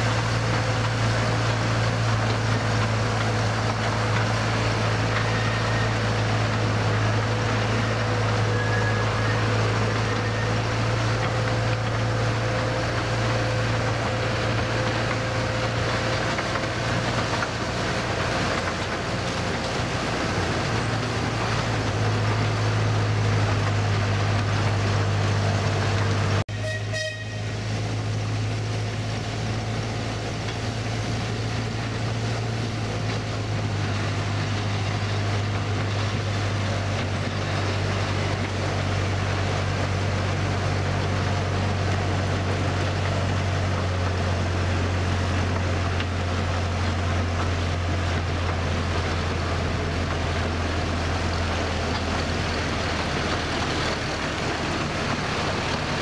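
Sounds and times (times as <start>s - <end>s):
miniature train rumbling on track: 0.0s - 56.0s
short high train toot: 26.5s - 27.7s.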